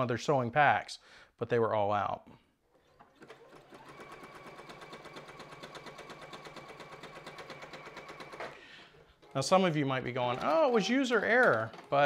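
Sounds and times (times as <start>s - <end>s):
sewing machine running: 3.2s - 8.6s, 10.3s - 12.0s.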